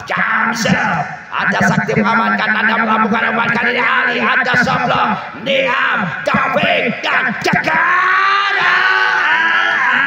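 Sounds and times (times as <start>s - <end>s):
man yelling excitedly: 0.0s - 10.0s.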